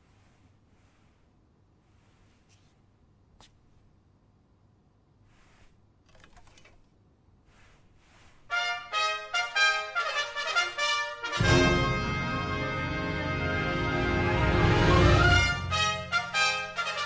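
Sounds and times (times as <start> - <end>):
faint rustles: 0.0 - 3.9, 5.2 - 8.6
trumpets playing short notes: 8.5 - 17.0
wind band playing loudly: 9.0 - 17.0.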